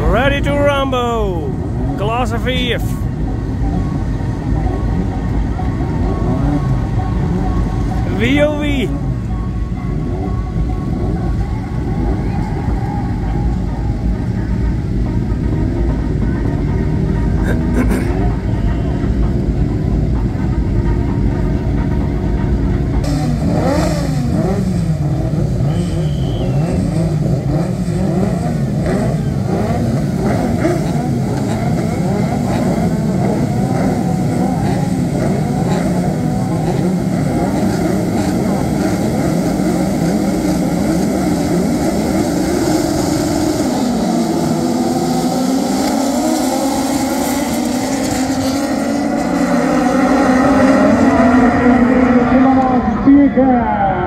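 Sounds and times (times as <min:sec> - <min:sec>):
car engines idling: 0:00.0 - 0:54.0
car engines revving: 0:00.0 - 0:54.0
cars pulling away: 0:00.0 - 0:54.0.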